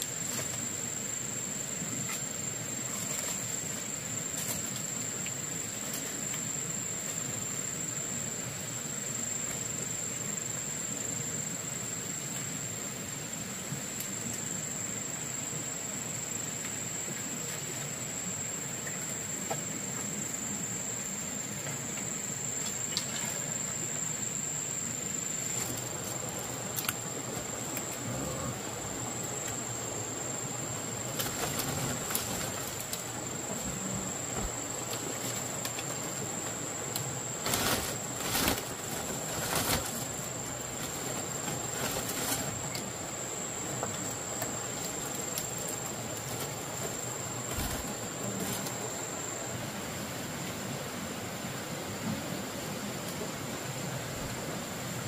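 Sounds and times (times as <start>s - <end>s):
insects chirring: 0.0s - 51.5s
background hiss: 0.0s - 55.0s.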